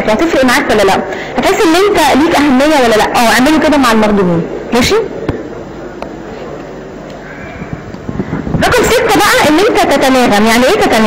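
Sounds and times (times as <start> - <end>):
microphone hiss and hum: 0.0 - 11.0.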